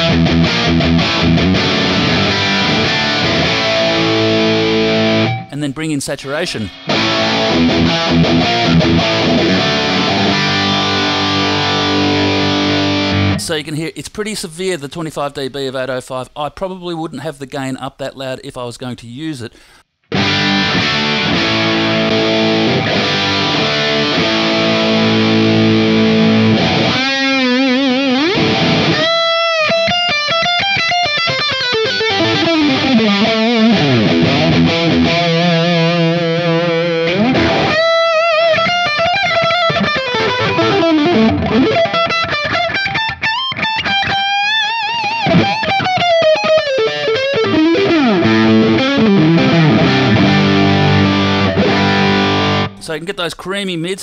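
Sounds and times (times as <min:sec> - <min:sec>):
distorted electric guitar: 0:00.0 - 0:13.6, 0:20.1 - 0:53.0.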